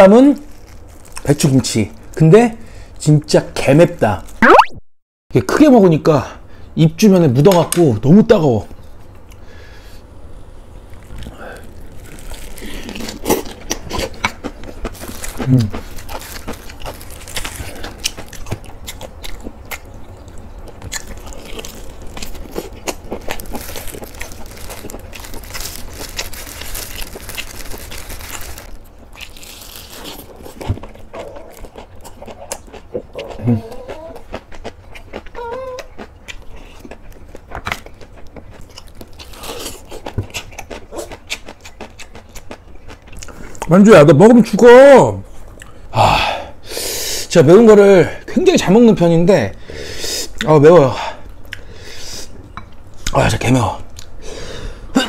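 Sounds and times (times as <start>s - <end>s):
wet chewing and crunching: 0.4s - 2.2s, 10.8s - 43.8s.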